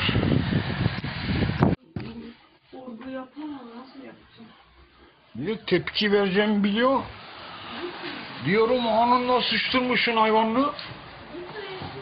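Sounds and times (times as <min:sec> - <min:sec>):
wind buffeting microphone: 0:00.0 - 0:01.8.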